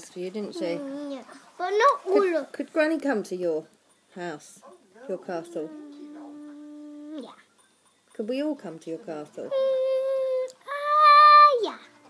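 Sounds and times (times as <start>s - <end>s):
girl singing long notes: 5.5s - 7.2s, 9.5s - 11.8s.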